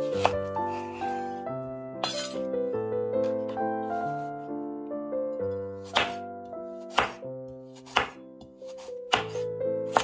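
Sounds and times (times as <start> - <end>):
knife chopping carrot on board: 0.0 - 0.4, 5.8 - 6.2, 6.8 - 10.0
background music: 0.0 - 10.0.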